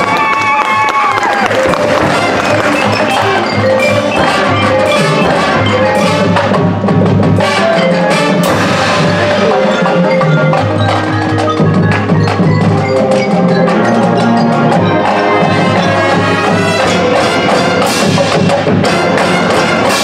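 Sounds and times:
mallet percussion: 0:00.0 - 0:20.0
marching band playing: 0:00.0 - 0:20.0
drums struck: 0:01.5 - 0:12.9, 0:14.7 - 0:20.0.

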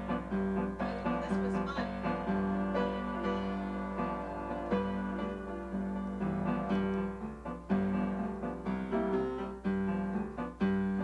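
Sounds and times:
piano playing: 0:00.0 - 0:11.0.

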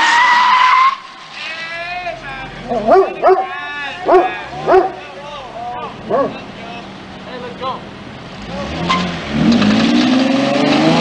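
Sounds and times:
faint car engine: 0:00.0 - 0:11.0
man shouting: 0:01.4 - 0:06.8.

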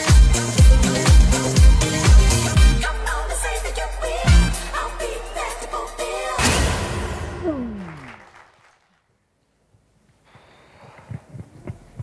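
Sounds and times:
soft mouth sounds: 0:10.3 - 0:12.0.

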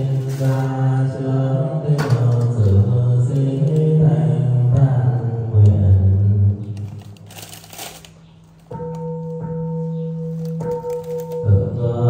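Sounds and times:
long steady chanted note: 0:00.0 - 0:07.2, 0:08.7 - 0:12.0
low chanting voice: 0:00.0 - 0:07.2, 0:11.4 - 0:12.0.

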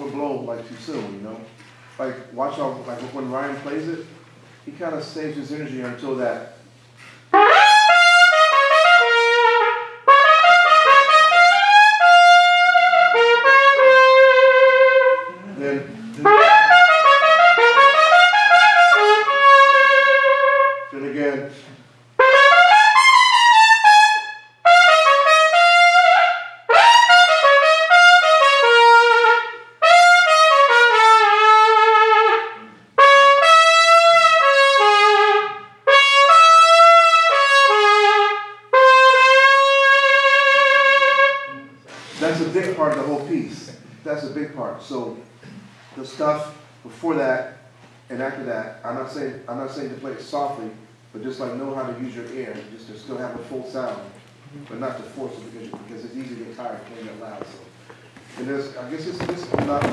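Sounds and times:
solo jazz trumpet: 0:07.2 - 0:15.4, 0:16.2 - 0:21.0, 0:22.1 - 0:41.9.

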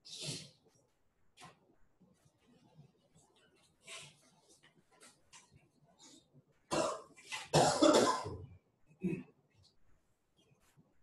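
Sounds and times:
person coughing: 0:06.7 - 0:09.4.

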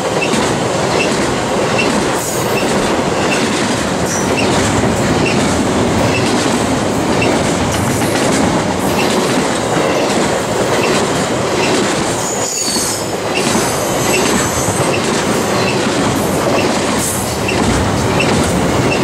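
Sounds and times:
train wheels clickety-clack: 0:00.0 - 0:19.0.

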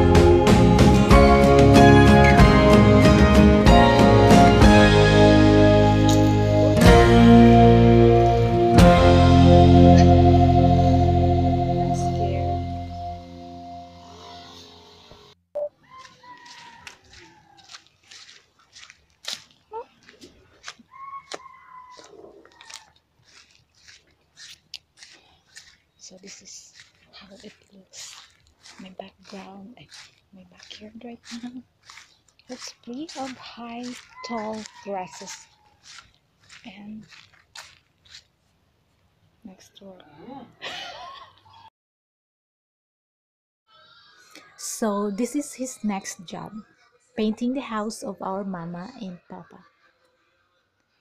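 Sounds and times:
organ music: 0:00.0 - 0:15.3
footsteps crunching on grass: 0:15.8 - 0:39.1.

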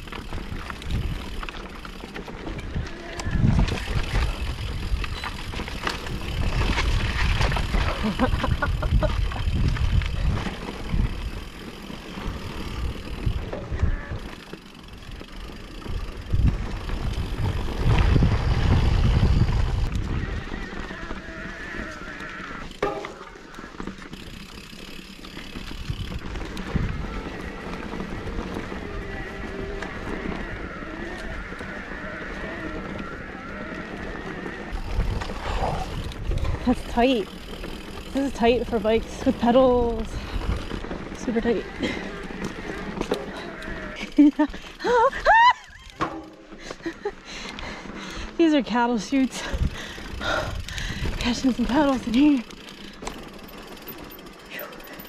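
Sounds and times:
bike rattling over bumps: 0:00.0 - 0:55.0
bike tyres rolling on dirt: 0:00.0 - 0:55.0
wind gusts on microphone: 0:02.7 - 0:05.3, 0:06.1 - 0:11.3, 0:16.2 - 0:20.8.

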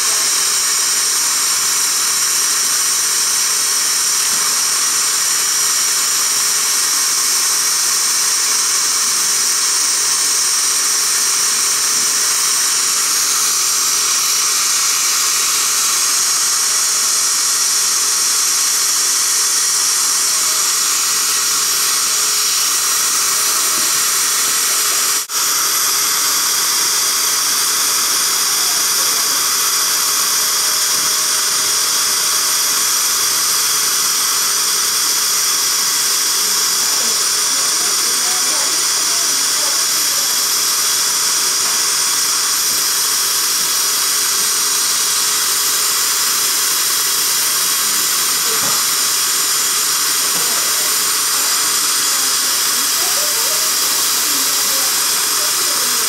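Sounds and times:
dental laser hissing: 0:00.0 - 0:56.0.

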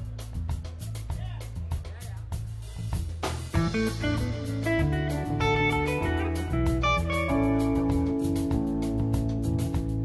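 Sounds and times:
drum kit: 0:00.0 - 0:10.0
electric bass: 0:00.0 - 0:10.0
electric guitar notes: 0:03.5 - 0:10.0.

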